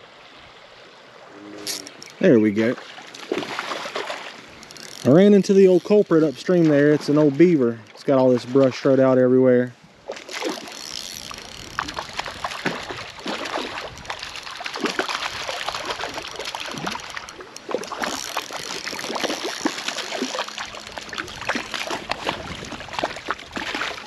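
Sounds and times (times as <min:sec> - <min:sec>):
stream running: 0:00.0 - 0:24.0
fish splashing in water: 0:02.8 - 0:07.3, 0:10.1 - 0:24.0.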